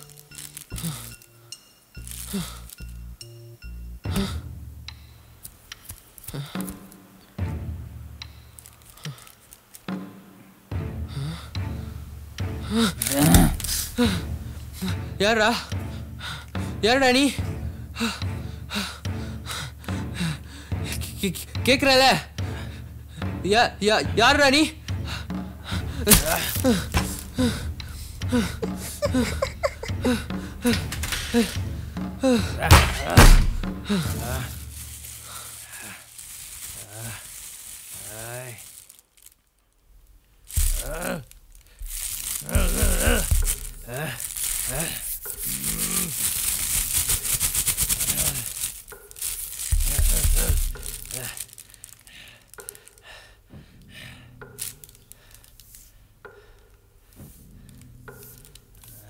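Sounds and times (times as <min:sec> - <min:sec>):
plastic crinkling: 0:00.0 - 0:01.4, 0:02.0 - 0:03.0, 0:05.4 - 0:07.0, 0:08.5 - 0:10.0, 0:12.8 - 0:14.8, 0:26.0 - 0:27.6, 0:28.6 - 0:31.6, 0:32.8 - 0:53.1, 0:54.4 - 0:56.0, 0:57.7 - 0:59.0
man gasping and groaning: 0:04.1 - 0:04.5, 0:06.2 - 0:06.8, 0:11.0 - 0:11.6, 0:12.6 - 0:16.5, 0:25.0 - 0:34.6, 0:40.6 - 0:46.4, 0:49.7 - 0:55.5.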